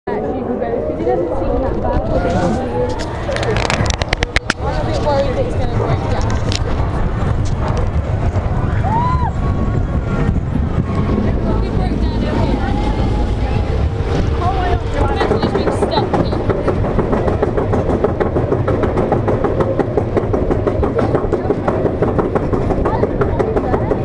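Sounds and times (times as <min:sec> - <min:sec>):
roller coaster rolling on track: 0:00.1 - 0:24.0
low rumble: 0:00.4 - 0:24.0.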